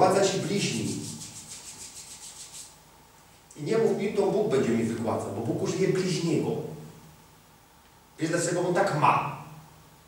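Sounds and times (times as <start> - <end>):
hands rubbing together: 0.6 - 2.8.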